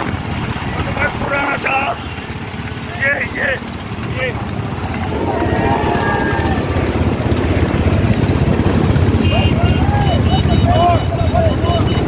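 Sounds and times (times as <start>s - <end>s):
motorcycle engines running: 0.0s - 12.0s
men shouting: 0.8s - 7.1s, 9.2s - 12.0s.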